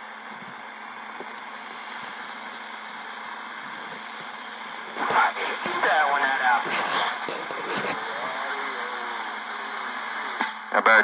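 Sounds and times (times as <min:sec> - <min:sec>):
faint steady hum: 0:00.0 - 0:11.0
radio static hiss: 0:00.6 - 0:11.0.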